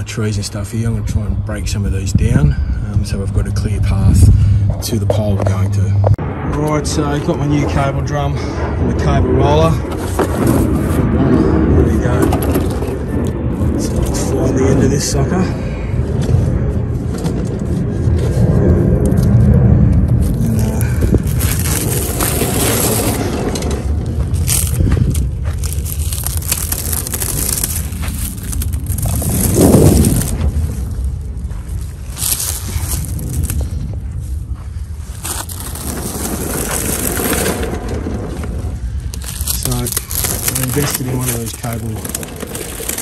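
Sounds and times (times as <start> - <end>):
steady low rumble: 0.0 - 43.0
plastic wrap crinkling: 20.2 - 23.6, 24.3 - 30.6, 31.8 - 33.8, 35.1 - 43.0
rustling handling noise: 20.2 - 43.0.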